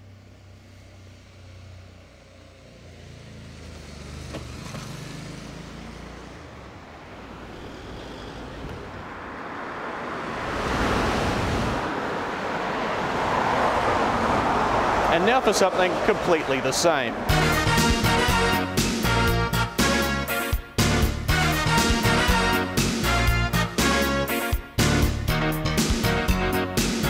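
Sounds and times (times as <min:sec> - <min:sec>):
low engine hum: 0:00.0 - 0:19.8
car passing: 0:00.0 - 0:24.2.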